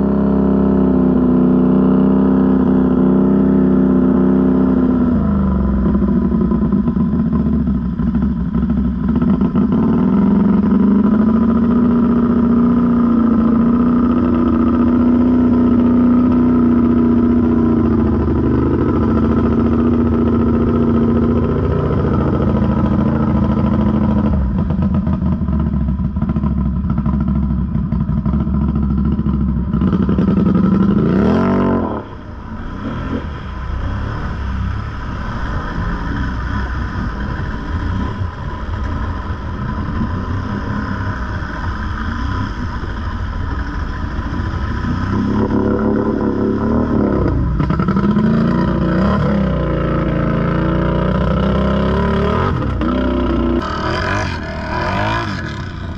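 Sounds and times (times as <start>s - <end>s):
atv engine revving: 0.0s - 55.9s.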